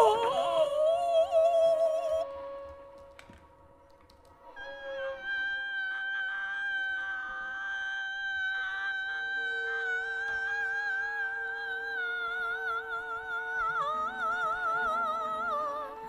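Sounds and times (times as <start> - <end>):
violin bowing a long high note: 0.0 - 16.0
soft clicks: 2.6 - 4.5.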